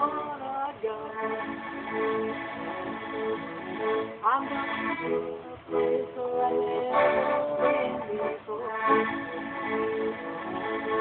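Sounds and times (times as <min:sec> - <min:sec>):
accordion playing chords: 0:00.0 - 0:11.0.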